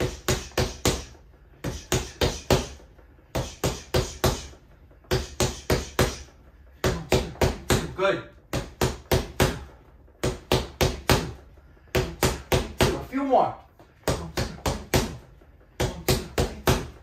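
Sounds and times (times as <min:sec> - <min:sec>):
punches hitting punching pad: 0:00.0 - 0:13.1, 0:14.0 - 0:17.0.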